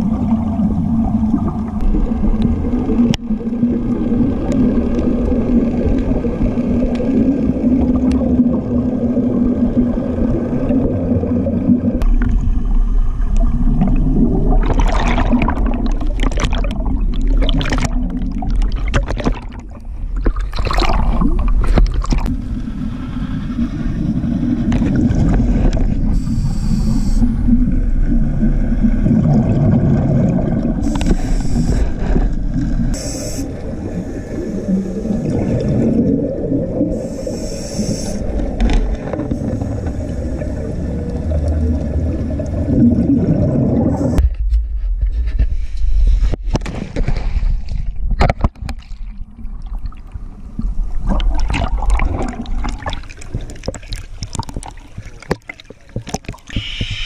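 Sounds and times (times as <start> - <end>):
underwater regulator bubbles gurgling: 0.0 - 44.2, 48.1 - 57.0
short high hisses: 26.2 - 27.4, 33.0 - 33.6, 37.0 - 38.3, 56.6 - 57.0.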